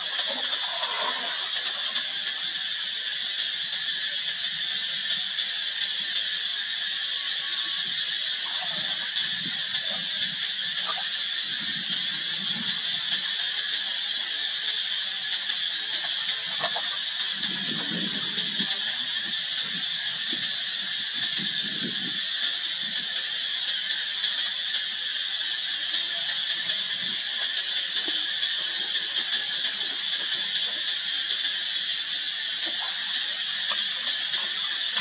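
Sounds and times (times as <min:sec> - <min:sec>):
monkeys splashing in water: 0:00.0 - 0:02.4, 0:15.9 - 0:19.4
steady high-pitched hiss: 0:00.0 - 0:35.0.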